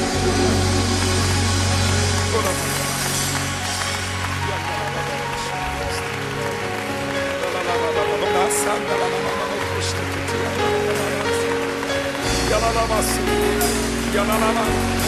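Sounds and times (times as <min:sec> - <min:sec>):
bass line: 0:00.0 - 0:03.7
held keyboard chords: 0:00.0 - 0:15.0.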